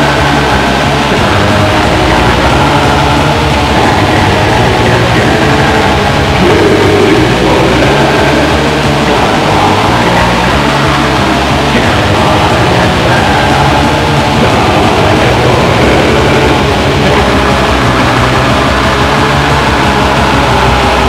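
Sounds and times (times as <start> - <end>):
distorted guitars: 0.0 - 21.0
fast dense drumming: 0.0 - 21.0
low bass line: 0.0 - 21.0.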